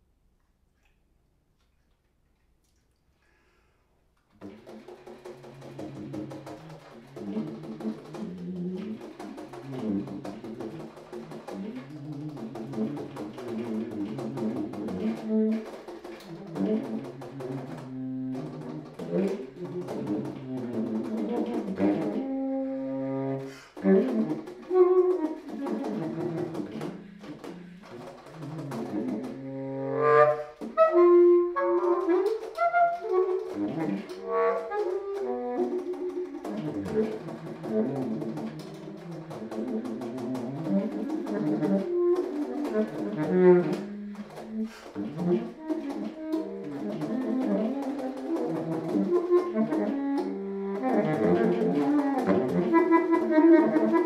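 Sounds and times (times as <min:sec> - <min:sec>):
baritone saxophone playing: 0:04.4 - 0:54.0.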